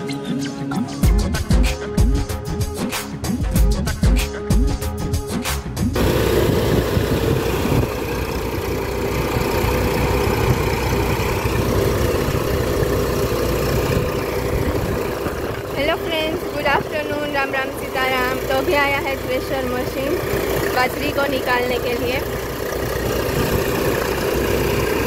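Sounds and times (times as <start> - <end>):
threshing machine drone: 5.9 - 25.0
voices: 14.9 - 22.4.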